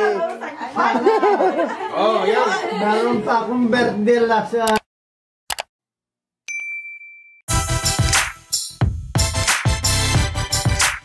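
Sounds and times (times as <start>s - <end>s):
notification ding: 6.5s - 7.4s
music: 7.5s - 11.0s.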